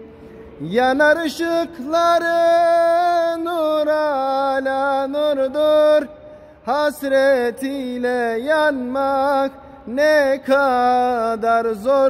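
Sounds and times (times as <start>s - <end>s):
person singing a devotional hymn: 0.5s - 12.0s.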